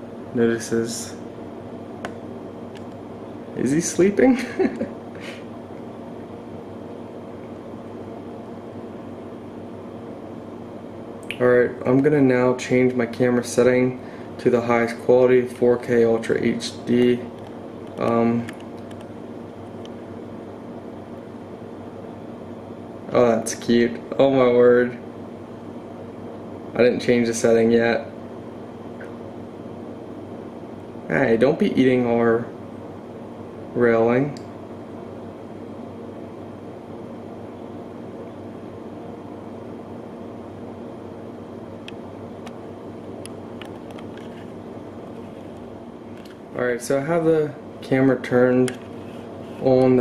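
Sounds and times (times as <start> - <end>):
background hum and hiss: 0.0 - 50.0.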